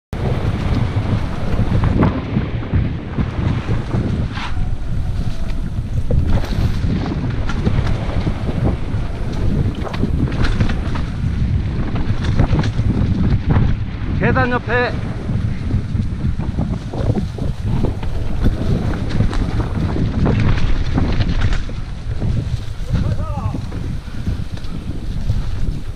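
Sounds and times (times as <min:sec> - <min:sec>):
wind buffeting microphone: 0:00.1 - 0:25.9
bike clicks and rattles: 0:00.2 - 0:25.9.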